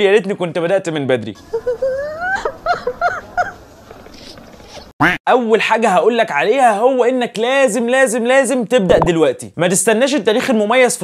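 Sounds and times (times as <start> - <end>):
woman crying and sobbing: 1.5 - 3.4.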